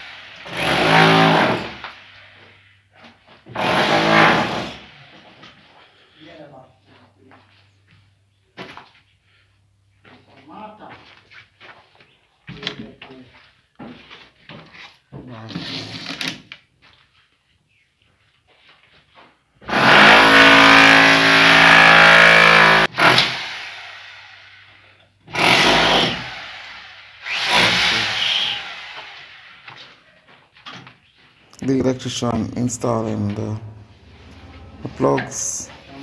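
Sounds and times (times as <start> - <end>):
power tool motor whine: 19.7 - 24.6, 25.3 - 29.9.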